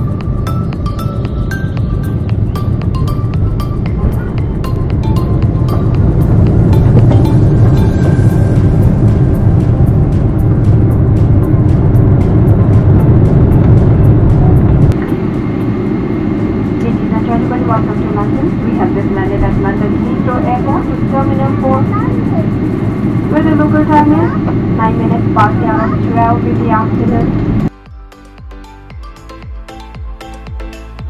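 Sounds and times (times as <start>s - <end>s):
aircraft cabin rumble: 0.0s - 27.7s
voice over cabin speakers: 16.8s - 22.6s, 23.2s - 27.6s.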